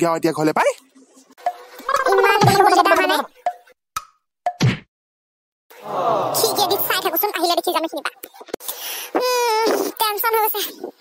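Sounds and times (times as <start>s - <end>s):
voice warbling gargle: 1.8s - 3.3s
wailing voice: 5.8s - 6.9s.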